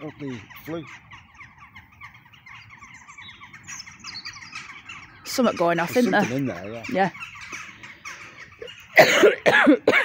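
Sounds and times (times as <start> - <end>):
crows calling: 0.0 - 10.0.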